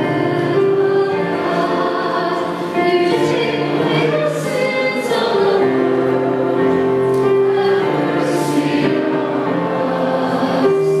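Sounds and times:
choir singing a hymn: 0.0 - 11.0
keyboard accompaniment: 0.0 - 11.0.

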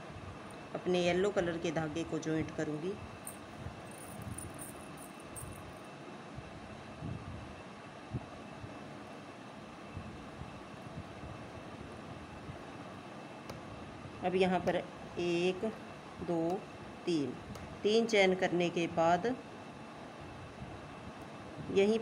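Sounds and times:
room noise hum and hiss: 0.0 - 22.0.

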